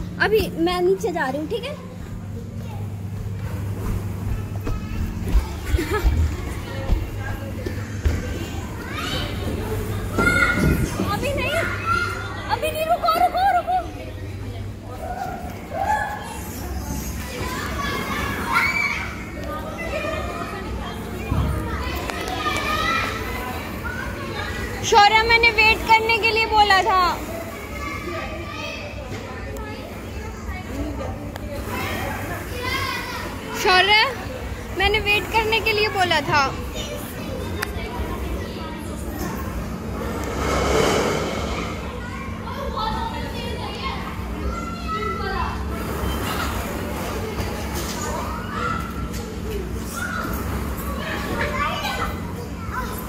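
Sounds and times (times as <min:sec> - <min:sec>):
steady low hum: 0:00.0 - 0:17.4, 0:34.2 - 0:44.5
busy indoor play area noise: 0:00.0 - 0:53.0
children calling and chattering: 0:00.0 - 0:53.0.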